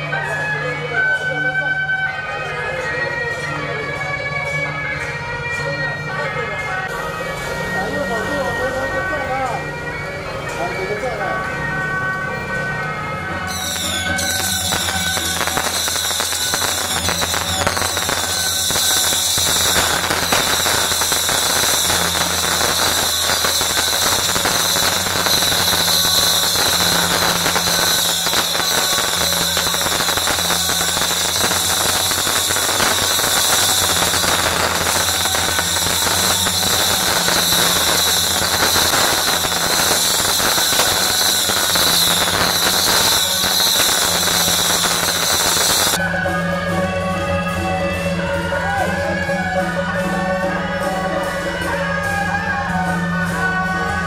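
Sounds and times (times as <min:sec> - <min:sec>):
firecrackers crackling: 0:12.0 - 0:46.1.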